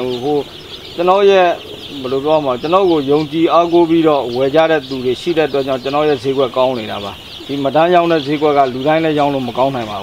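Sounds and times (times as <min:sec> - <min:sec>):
chicks peeping: 0:00.0 - 0:10.0
man talking: 0:00.0 - 0:10.0.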